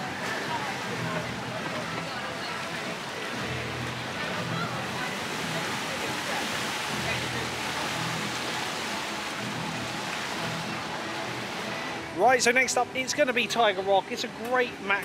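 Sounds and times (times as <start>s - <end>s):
water rushing down a flume: 0.0s - 15.0s.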